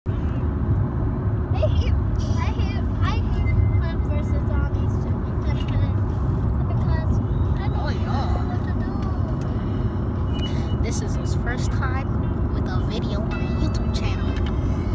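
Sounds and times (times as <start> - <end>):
road rumble inside car: 0.1 - 14.9.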